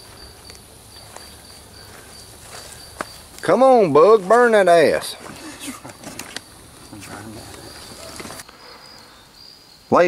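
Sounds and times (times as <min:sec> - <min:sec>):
crickets trilling: 0:00.0 - 0:10.0
man laughing: 0:05.4 - 0:06.0.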